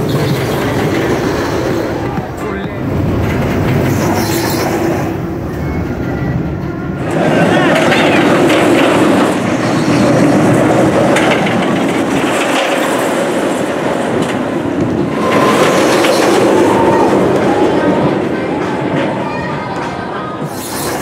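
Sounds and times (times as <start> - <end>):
roller coaster train rumbling: 0.0 - 21.0.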